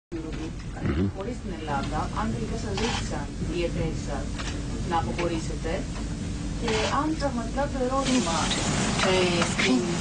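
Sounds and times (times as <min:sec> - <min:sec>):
person talking: 0:00.2 - 0:02.9.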